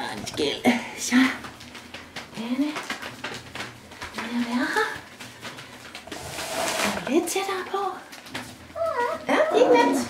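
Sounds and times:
puppies whining and yelping: 0:08.8 - 0:10.0
woman's high-pitched wordless voice: 0:08.8 - 0:10.0.

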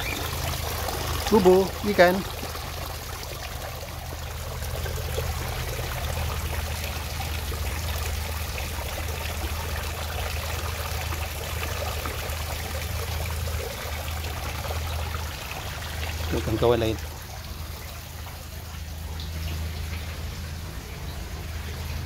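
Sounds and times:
water trickling and splashing: 0:00.0 - 0:22.0.

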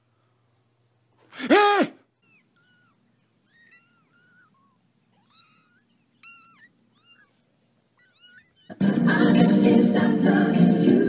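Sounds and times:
kittens mewing: 0:01.3 - 0:08.8.

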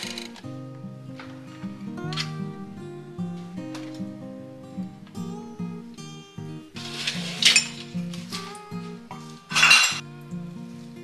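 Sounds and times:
acoustic guitar music: 0:00.0 - 0:11.0
dishes and glassware clinking: 0:06.9 - 0:10.0.

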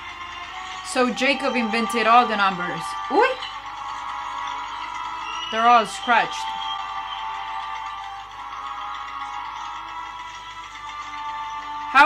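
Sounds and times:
sustained orchestral film score: 0:00.0 - 0:12.0.

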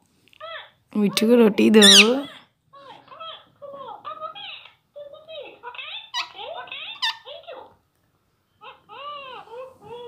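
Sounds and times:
parakeet chattering: 0:01.2 - 0:02.4, 0:05.5 - 0:07.7
parakeet shrill squawks: 0:01.8 - 0:02.4.

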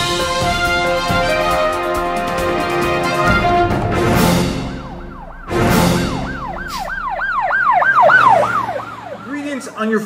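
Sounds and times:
police siren yelping: 0:03.0 - 0:09.8
sudden noisy burst: 0:04.3 - 0:09.0.

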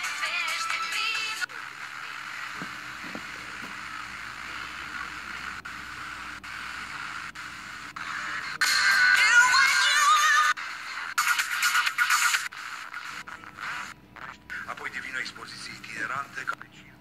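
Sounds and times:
radio music with singing: 0:00.0 - 0:17.0
radio static hiss: 0:00.0 - 0:17.0.

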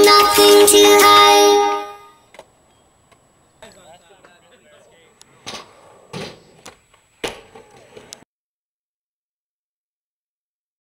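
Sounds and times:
music: 0:00.0 - 0:02.2.

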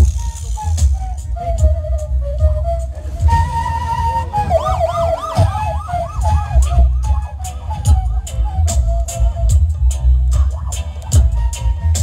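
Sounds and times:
backing music with heavy bass: 0:00.0 - 0:12.0
wooden flute playing: 0:00.0 - 0:12.0
siren-like warble: 0:01.9 - 0:08.7.

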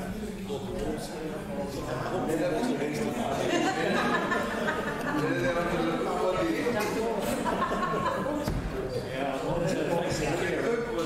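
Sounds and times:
indistinct conversation: 0:00.0 - 0:11.0
dull thump: 0:08.4 - 0:08.8.

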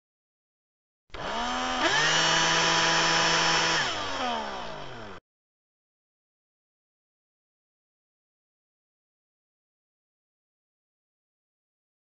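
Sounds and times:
motor revving and winding down: 0:01.1 - 0:05.2.

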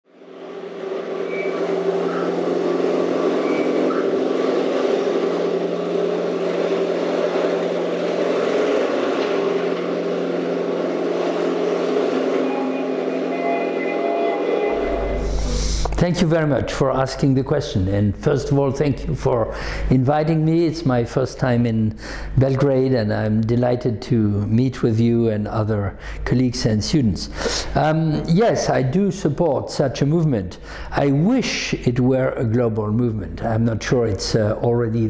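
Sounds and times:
low hum: 0:00.1 - 0:17.4
steady droning tones: 0:00.1 - 0:21.6.

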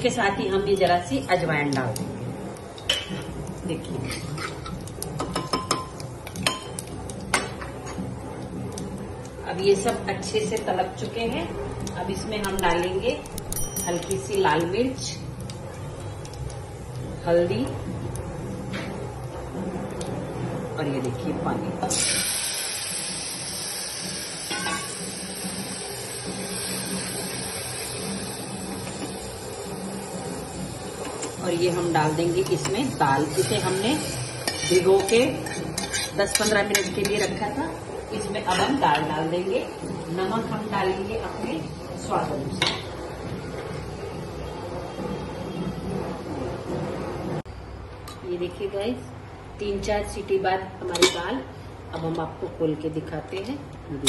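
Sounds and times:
spices frying in oil: 0:00.0 - 0:20.2, 0:20.8 - 0:43.0
water hissing and boiling: 0:00.0 - 0:47.5
metal spoon clinking on pot: 0:13.4 - 0:14.6, 0:50.9 - 0:51.3.

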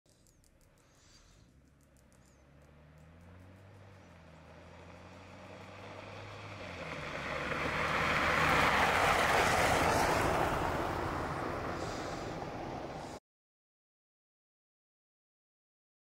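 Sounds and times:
vehicle engine driving past: 0:00.1 - 0:13.2
tyres on gravel: 0:01.5 - 0:13.1.

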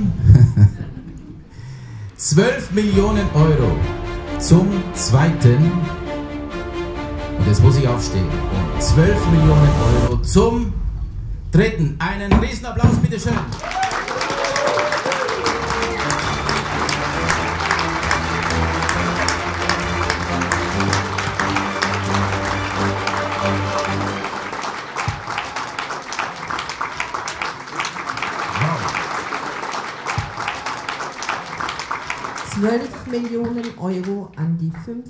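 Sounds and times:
sustained background music notes: 0:02.4 - 0:11.1, 0:15.3 - 0:27.4
audience applauding: 0:13.3 - 0:34.2.

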